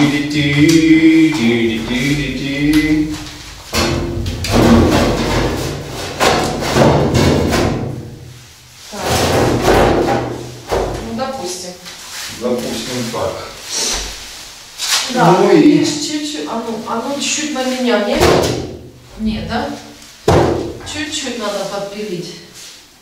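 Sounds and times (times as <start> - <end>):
heavy panel knocking and scraping: 3.1 - 11.3.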